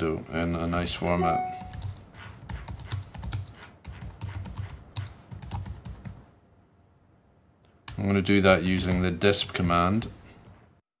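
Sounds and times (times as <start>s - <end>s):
computer keyboard typing: 0.5s - 6.2s, 7.9s - 9.1s.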